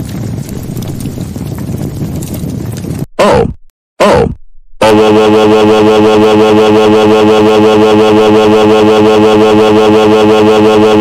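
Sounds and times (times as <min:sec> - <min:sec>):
fire crackling: 0:00.0 - 0:03.1.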